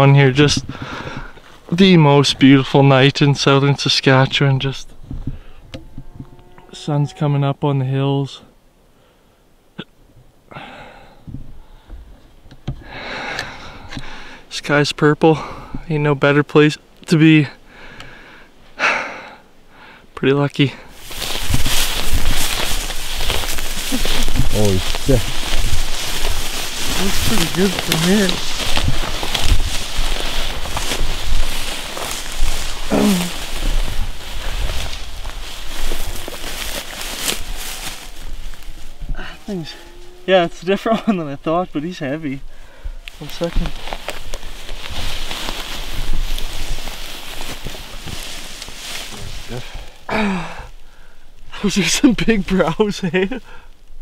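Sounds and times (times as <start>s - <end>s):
footsteps through tall grass: 20.8s - 50.1s.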